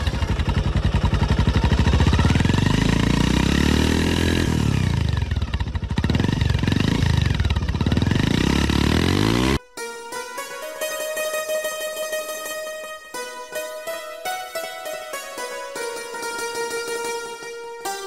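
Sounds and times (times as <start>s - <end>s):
motorcycle engine revving: 0.0s - 9.6s.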